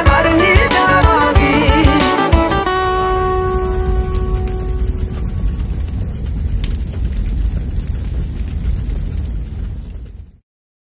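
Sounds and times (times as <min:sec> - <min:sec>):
loud deep rumble: 0:00.2 - 0:10.4.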